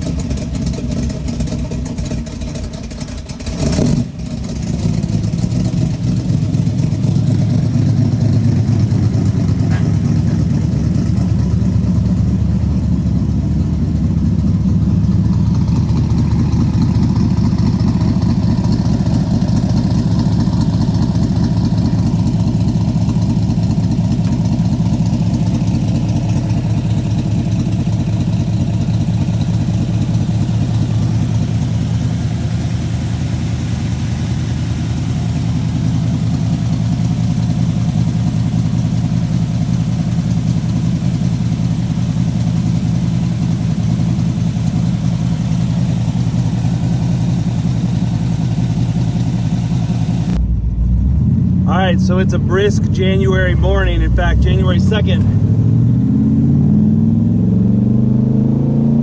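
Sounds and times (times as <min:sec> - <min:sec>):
car engine idling: 0:00.0 - 0:55.8.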